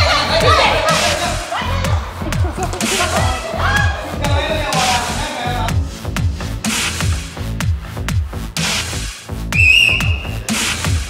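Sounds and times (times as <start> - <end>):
electronic dance music: 0.0 - 11.0
referee's whistle blast: 9.6 - 10.4.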